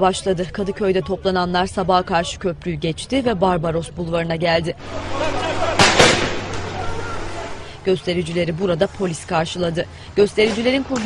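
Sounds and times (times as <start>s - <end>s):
distant voices: 0.0s - 11.0s
noisy outdoor ambience: 0.0s - 11.0s
sharp bangs: 4.8s - 7.8s.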